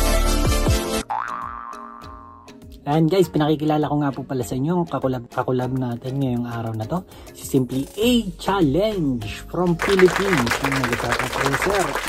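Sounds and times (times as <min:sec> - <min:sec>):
man speaking: 0:07.6 - 0:12.0.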